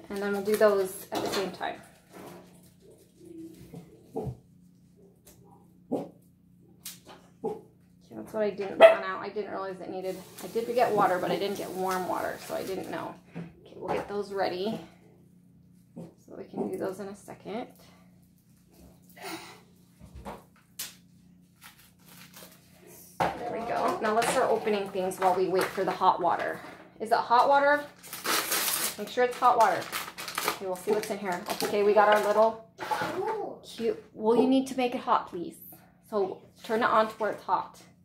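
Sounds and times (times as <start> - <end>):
plastic packaging crinkles: 0.0 - 0.9, 10.1 - 10.9, 20.8 - 22.8, 27.8 - 32.5.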